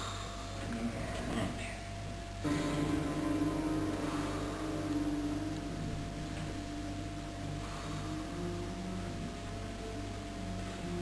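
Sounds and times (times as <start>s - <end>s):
electrical hum: 0.0s - 11.0s
low droning tone: 2.3s - 11.0s.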